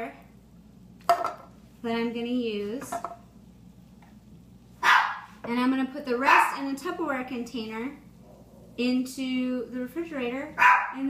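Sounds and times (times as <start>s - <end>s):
dog barking: 4.8s - 5.3s, 10.6s - 11.0s.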